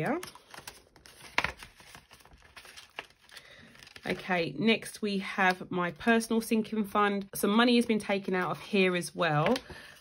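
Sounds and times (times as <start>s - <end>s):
plastic and banknotes rustling: 0.0s - 4.5s.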